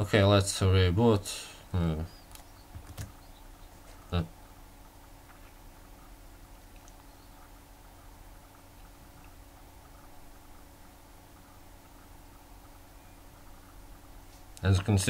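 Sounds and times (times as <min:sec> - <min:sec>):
low electrical hum: 0:00.0 - 0:15.0
tiny ticks: 0:02.2 - 0:03.4, 0:05.2 - 0:07.5, 0:14.3 - 0:15.0.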